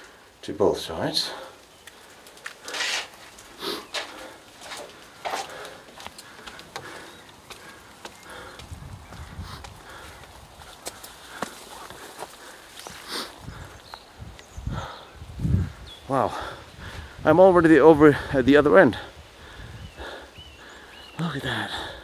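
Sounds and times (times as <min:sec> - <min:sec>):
footsteps on stone and leaves: 0:01.7 - 0:14.5
brushing through vegetation: 0:02.2 - 0:05.7.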